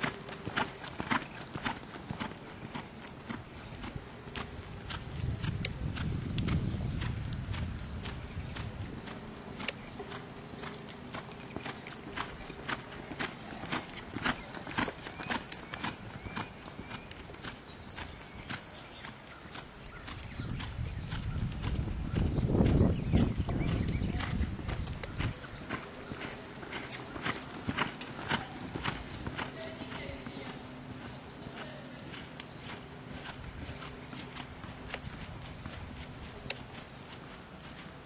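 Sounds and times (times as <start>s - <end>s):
horse hoofbeats: 0.0s - 38.0s.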